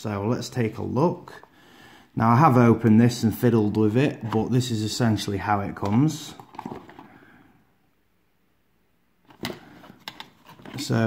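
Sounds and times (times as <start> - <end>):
faint handling noise: 5.6 - 7.2, 9.2 - 11.0.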